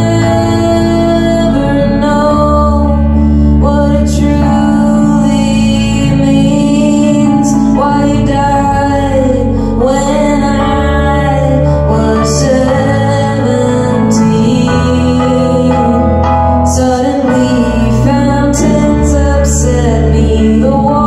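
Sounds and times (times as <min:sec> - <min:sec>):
electric guitar: 0:00.0 - 0:21.0
electric keyboard: 0:00.0 - 0:21.0
woman singing long held notes: 0:00.0 - 0:21.0.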